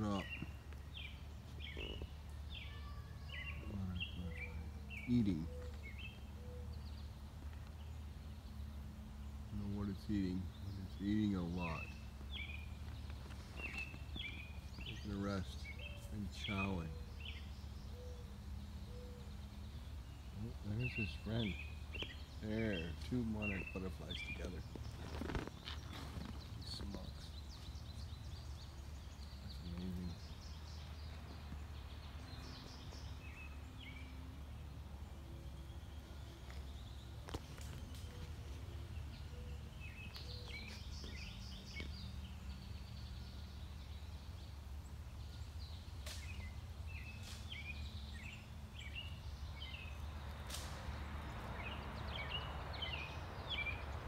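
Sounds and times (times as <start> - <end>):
birds chirping: 0.0 - 54.0
low outdoor rumble: 0.0 - 54.0.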